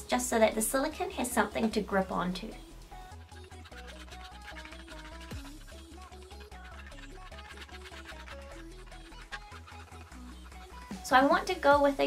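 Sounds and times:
background music with pulsing bass: 1.8 - 12.0
metal point scratching plastic: 3.0 - 11.4.

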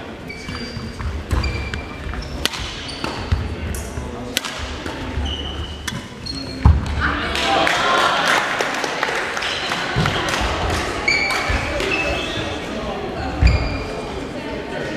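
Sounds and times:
voices in hall: 0.0 - 14.9
shoes squeaking on wooden court: 0.2 - 4.2, 4.8 - 6.8, 11.0 - 14.1
racket striking shuttlecock: 2.4 - 5.0.

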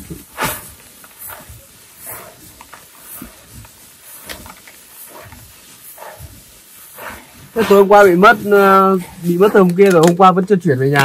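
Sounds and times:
rice grains rustling: 0.0 - 11.0.

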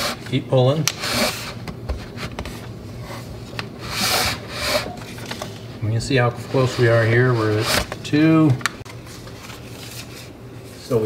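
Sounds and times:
paper sliding through slot: 6.5 - 8.5.

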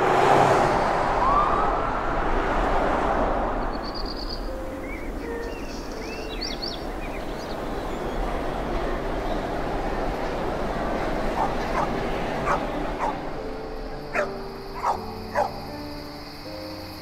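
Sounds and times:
soft sustained music notes: 3.7 - 17.0
dog barking: 11.4 - 13.2, 14.1 - 15.6.

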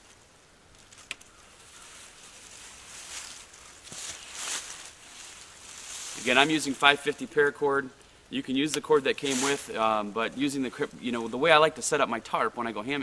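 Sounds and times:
nylon netting rustling: 0.8 - 7.1, 8.9 - 11.5.

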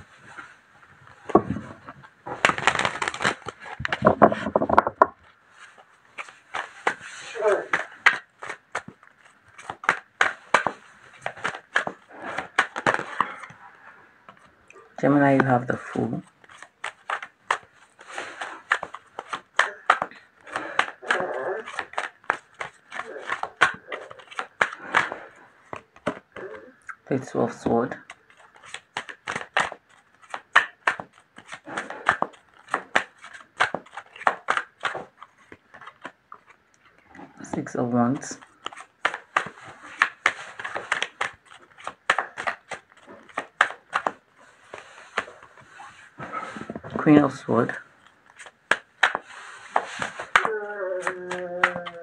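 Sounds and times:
cards being shuffled: 0.2 - 13.6, 14.2 - 52.0
card rustle: 0.3 - 13.6, 15.2 - 26.5, 27.2 - 52.0.

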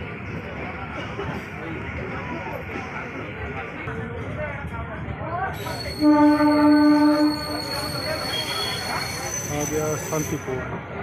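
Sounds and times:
train carriages rumbling: 0.0 - 11.0
wheels squealing: 5.6 - 10.6
train horn blast: 5.9 - 7.6.

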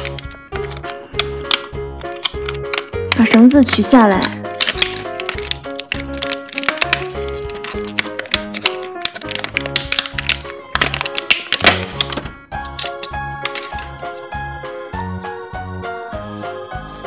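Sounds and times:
plastic bag crinkling: 4.4 - 12.1.

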